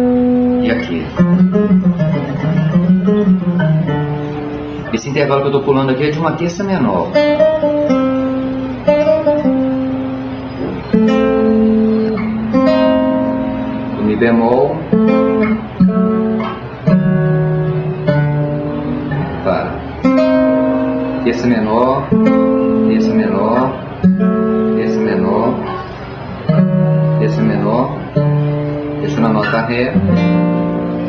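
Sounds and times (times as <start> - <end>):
guitar playing single notes: 0.0 - 31.0.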